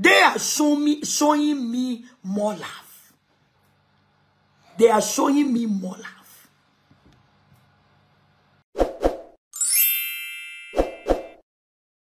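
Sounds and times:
bright bell-like ding: 9.6 - 11.4.

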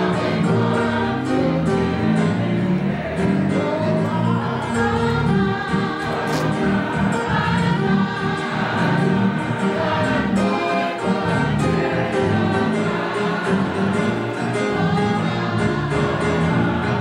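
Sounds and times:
choir singing gospel music: 0.0 - 17.0.

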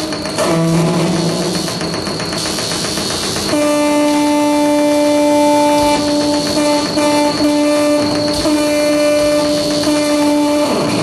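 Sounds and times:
buzzing drone tone: 0.0 - 11.0.

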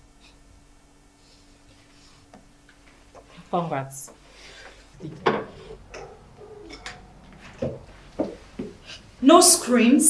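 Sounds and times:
bird cooing: 4.9 - 9.0.

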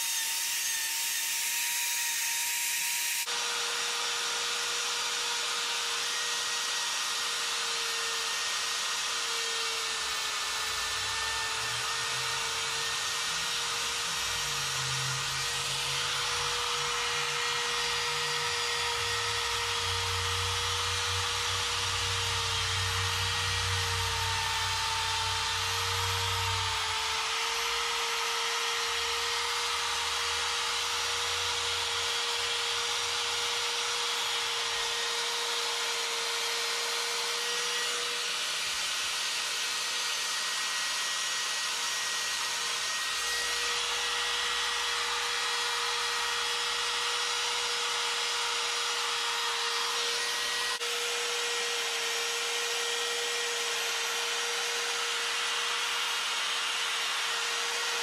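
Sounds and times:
die grinder grinding wood: 0.0 - 58.0.

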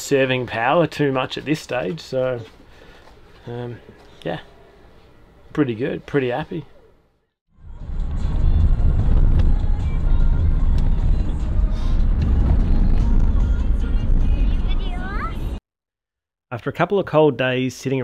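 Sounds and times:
road and engine rumble in car: 7.7 - 15.5.

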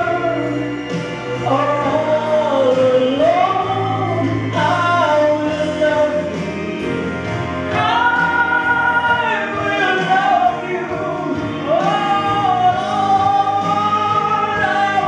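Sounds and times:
man singing gospel song: 0.0 - 15.0
musical accompaniment: 0.0 - 15.0.

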